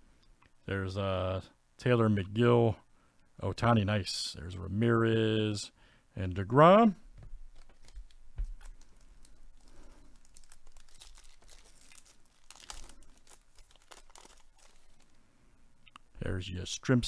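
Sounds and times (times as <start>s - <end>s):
wrapper crinkling and tearing: 7.5s - 15.2s.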